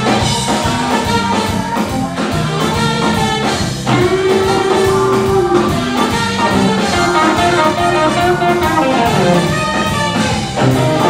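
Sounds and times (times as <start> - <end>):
drums: 0.0 - 11.0
electric bass: 0.0 - 11.0
keyboards: 0.0 - 11.0
saxophone: 0.6 - 11.0
trumpet: 0.6 - 11.0.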